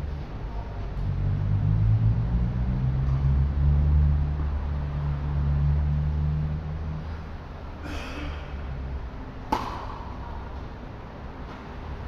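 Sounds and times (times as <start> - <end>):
low mechanical drone: 0.0 - 12.0.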